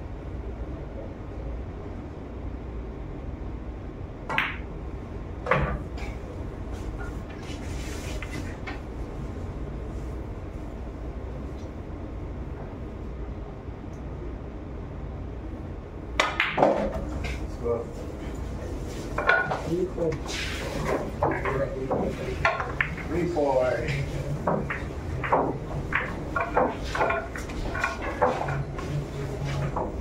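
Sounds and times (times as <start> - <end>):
balls clacking together: 4.3 - 4.7, 16.2 - 17.6, 18.4 - 30.0
cue striking ball: 4.3 - 4.7, 16.2 - 17.4, 19.1 - 30.0.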